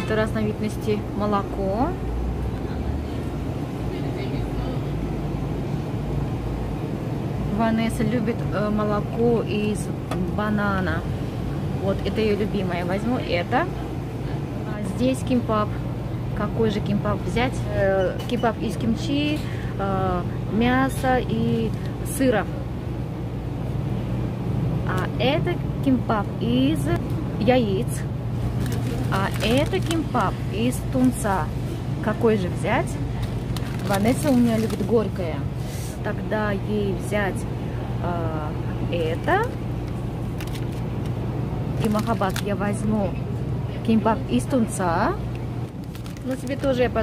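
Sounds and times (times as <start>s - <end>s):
low hum and rumble: 0.0s - 47.0s.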